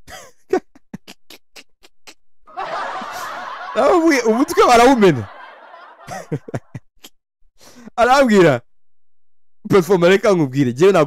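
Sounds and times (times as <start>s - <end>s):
man laughing: 0.1s - 7.2s.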